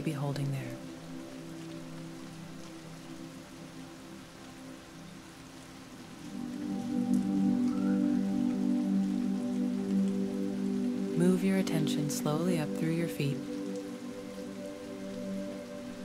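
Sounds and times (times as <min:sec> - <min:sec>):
soft sustained music chords: 0:00.0 - 0:16.0
steady rain falling: 0:00.0 - 0:16.0.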